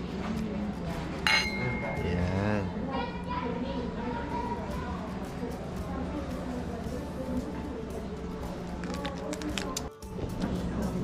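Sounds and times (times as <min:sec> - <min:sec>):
wine glasses clinking: 0:01.3 - 0:02.3.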